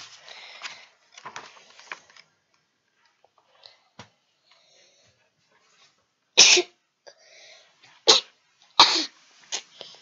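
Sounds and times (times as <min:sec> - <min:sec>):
boy coughing: 0:06.4 - 0:06.8, 0:08.1 - 0:09.1.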